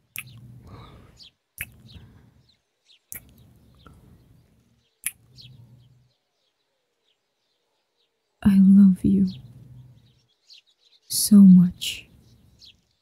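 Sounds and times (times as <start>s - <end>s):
faint birds chirping: 0.0s - 13.0s
kiss lip-smacks: 0.1s - 0.4s, 1.6s - 1.9s, 3.1s - 3.4s, 5.0s - 5.3s.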